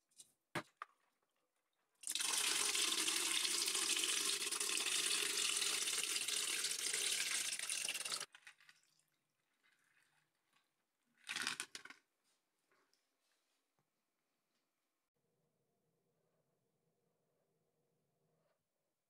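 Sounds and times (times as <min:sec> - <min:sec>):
gel beads pouring into plastic pipe: 0:02.0 - 0:08.3.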